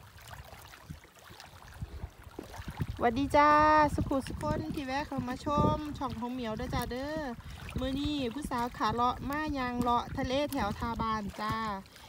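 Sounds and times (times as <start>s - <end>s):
small waves lapping on rocks: 0.0s - 12.0s
wind rumbling on microphone: 0.0s - 12.0s.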